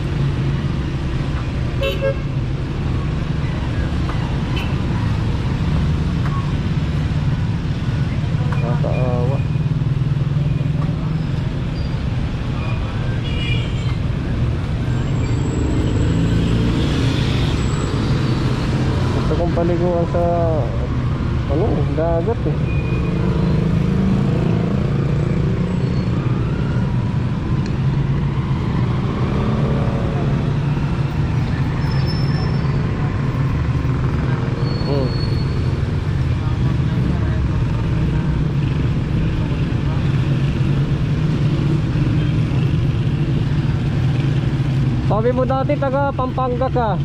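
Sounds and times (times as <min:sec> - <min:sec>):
road traffic rumble: 0:00.0 - 0:47.0.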